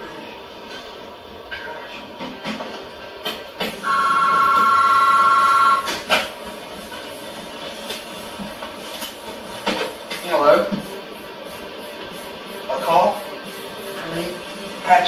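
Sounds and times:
electronic telephone ringing: 3.8s - 5.9s.

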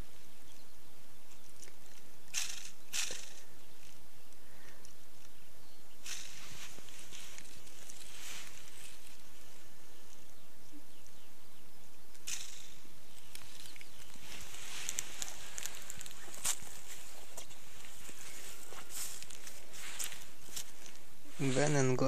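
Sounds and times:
steady outdoor hiss: 0.0s - 22.0s
rustles on dry leaves: 1.8s - 10.3s, 12.2s - 22.0s.

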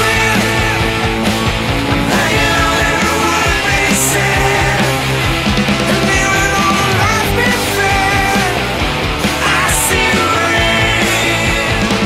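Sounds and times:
rock band music: 0.0s - 12.0s.

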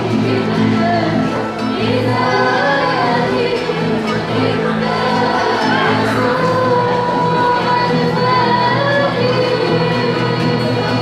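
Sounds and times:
guitar: 0.0s - 11.0s
voices singing a hymn: 0.0s - 11.0s.

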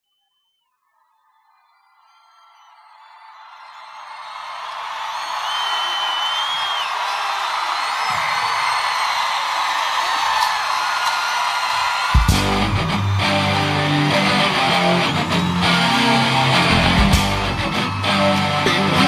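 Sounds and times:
whistles: 0.0s - 19.0s
crowd cheering and screaming: 0.8s - 19.0s
high held screams: 1.9s - 19.0s.

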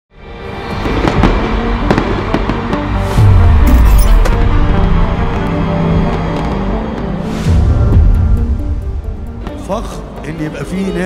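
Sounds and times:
loud music: 0.3s - 11.0s
fireworks crackling and popping: 0.8s - 3.2s.

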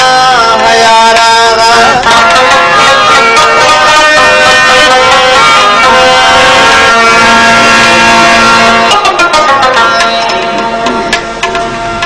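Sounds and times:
harmonium chords: 0.0s - 12.0s.

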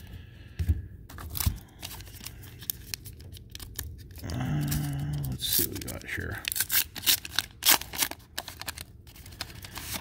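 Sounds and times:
foil wrapper crinkling: 1.2s - 10.0s
foil wrapper ripping: 1.9s - 10.0s.

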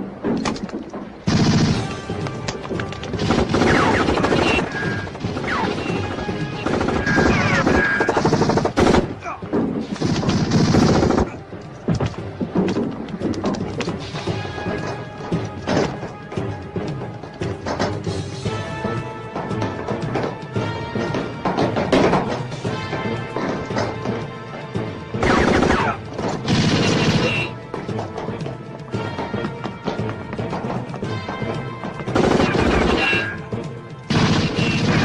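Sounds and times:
dramatic score music: 0.0s - 35.0s
gunshot bursts: 1.3s - 2.1s, 25.2s - 27.5s, 34.1s - 35.0s.

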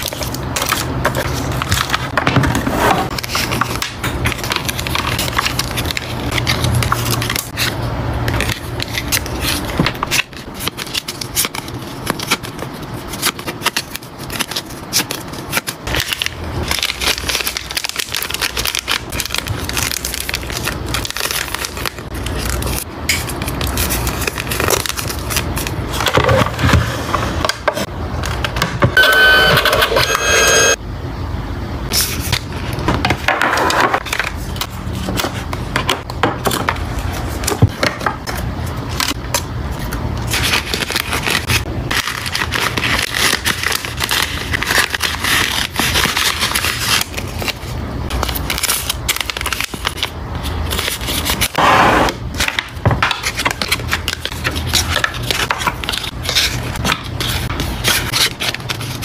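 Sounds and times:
plastic sleeves crinkling: 3.1s - 26.4s, 38.4s - 51.5s.

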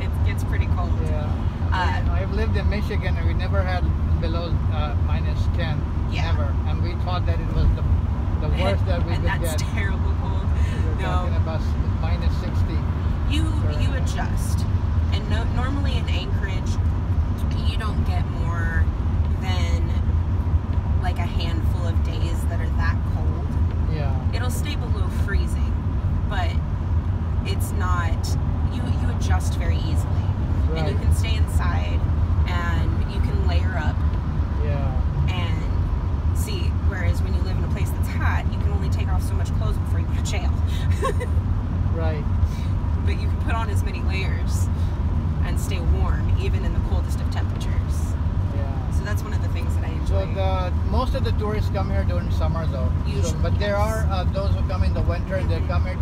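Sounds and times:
conversation: 0.0s - 56.0s
van engine and tyres droning: 0.0s - 56.0s.

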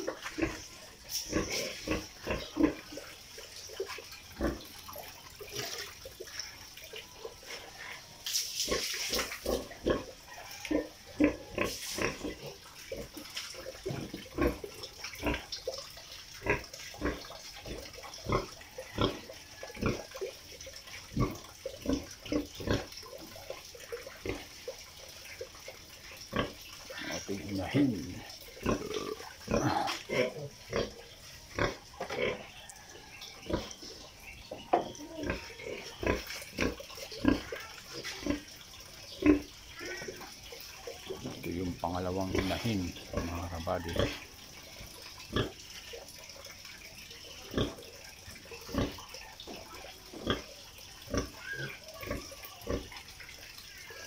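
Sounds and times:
pig grunting and eating: 0.0s - 46.6s, 47.4s - 54.0s
water running into trough: 0.0s - 54.0s.

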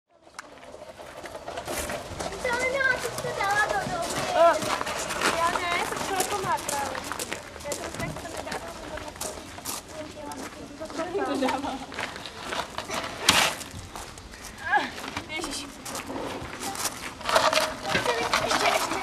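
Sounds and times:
children calling and chattering: 0.2s - 19.0s.

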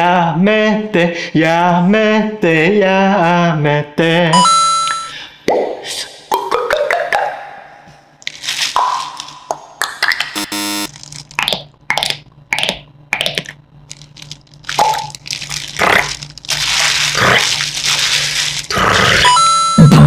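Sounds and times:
beatbox crackle imitations: 5.4s - 7.7s, 8.8s - 13.6s, 14.7s - 20.0s
plastic bottle being crushed: 8.2s - 9.5s, 13.4s - 18.8s
bones cracking: 8.2s - 19.3s.

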